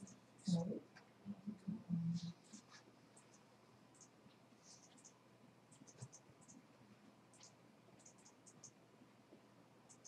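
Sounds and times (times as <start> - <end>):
faint light ticks and scratches: 0.0 - 6.7, 7.3 - 10.0.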